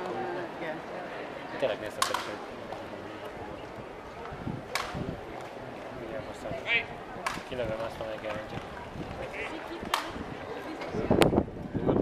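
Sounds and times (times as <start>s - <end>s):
bystanders in a city square: 0.0s - 12.0s.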